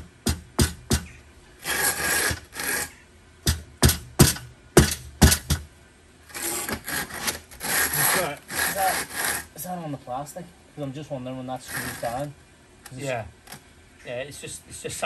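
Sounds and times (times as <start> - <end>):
rasping scraping: 0.6 - 3.6, 6.2 - 9.7, 11.6 - 12.3.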